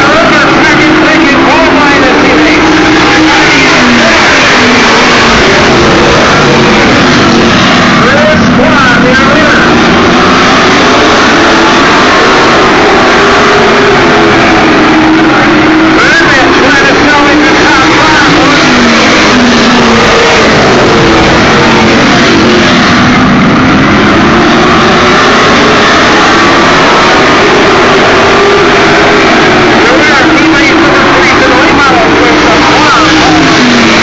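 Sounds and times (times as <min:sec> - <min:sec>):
race car engines running hard: 0:00.0 - 0:34.0.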